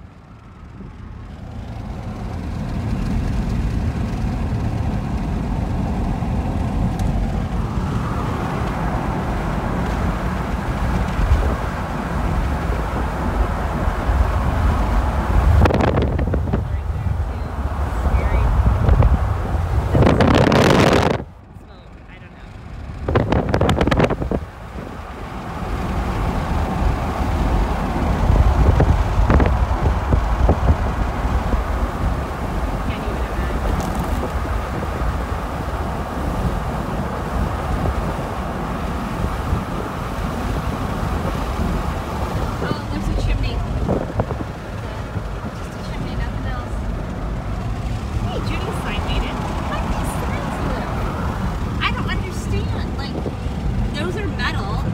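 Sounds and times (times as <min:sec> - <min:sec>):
car road and engine noise: 0:00.0 - 0:54.9
wind rushing across microphone: 0:00.7 - 0:54.9.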